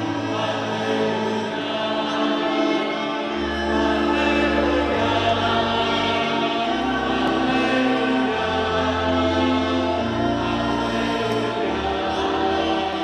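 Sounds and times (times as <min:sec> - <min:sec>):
choir singing slow chords: 0:00.0 - 0:13.0.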